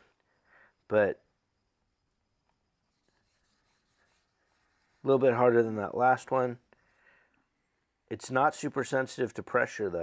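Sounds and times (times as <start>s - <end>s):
knife rubbing on whetstone: 2.9s - 5.5s.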